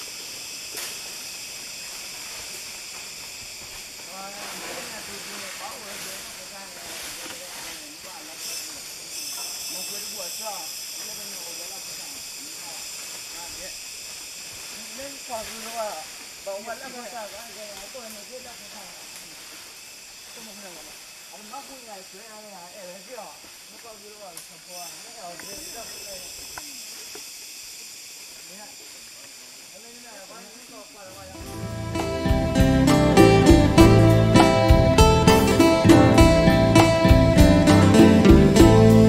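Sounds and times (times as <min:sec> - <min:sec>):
insects droning: 0:00.0 - 0:39.0.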